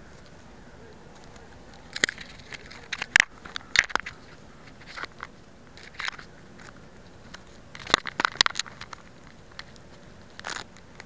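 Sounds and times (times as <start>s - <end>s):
crackles clicks and rustles: 0.0s - 11.0s.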